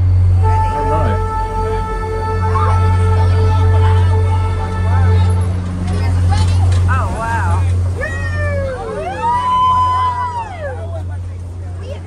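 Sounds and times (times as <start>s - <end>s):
vehicle engine droning: 0.0s - 12.0s
people whooping and cheering: 7.2s - 11.2s.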